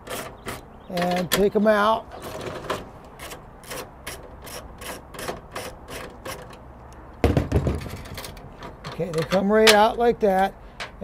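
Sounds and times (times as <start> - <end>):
dull thump: 7.2 - 8.0.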